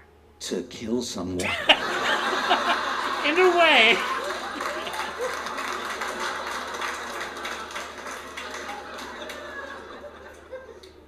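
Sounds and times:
audience laughing: 1.4s - 11.0s
audience clapping: 1.8s - 11.0s.

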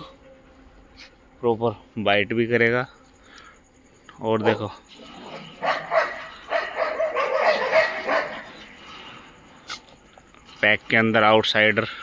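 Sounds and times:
pack of dogs barking: 4.4s - 8.8s.

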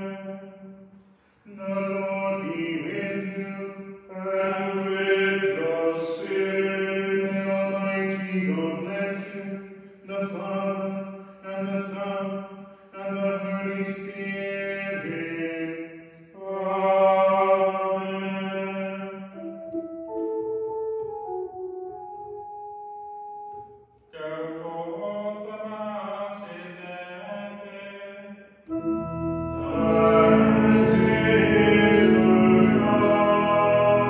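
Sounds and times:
voices singing liturgical chant: 1.5s - 12.4s, 13.0s - 19.5s, 26.3s - 34.0s.

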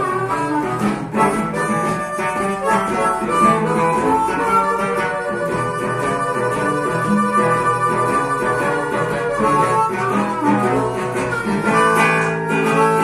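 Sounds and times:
acoustic guitar accompaniment: 0.0s - 13.0s
harmonica blues solo: 0.0s - 13.0s.

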